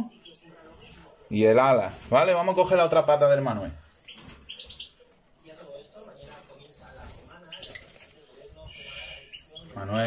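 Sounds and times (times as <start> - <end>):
goldfinch chirping: 4.0 - 5.0, 6.6 - 10.0.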